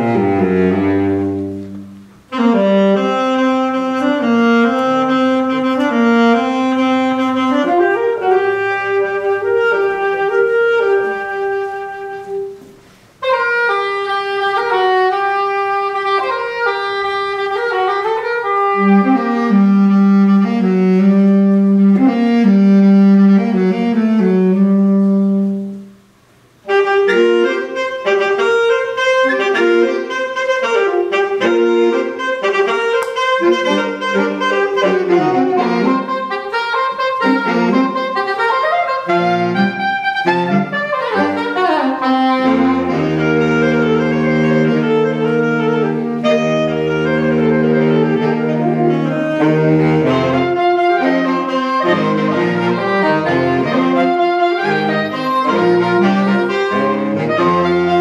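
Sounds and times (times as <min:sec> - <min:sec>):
saxophone quartet playing a reel: 0:00.0 - 0:58.0.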